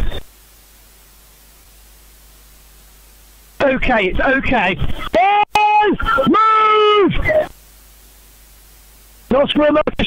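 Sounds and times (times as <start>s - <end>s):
static hiss: 0.0s - 10.0s.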